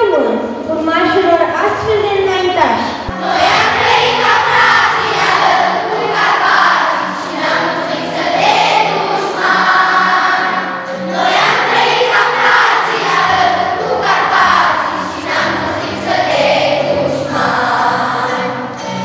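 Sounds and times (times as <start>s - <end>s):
children singing in chorus: 3.1s - 19.0s.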